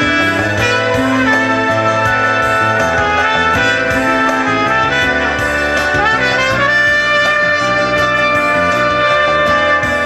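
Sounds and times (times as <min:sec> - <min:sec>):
acoustic guitar and band: 0:00.0 - 0:10.0
trumpet solo: 0:00.0 - 0:10.0.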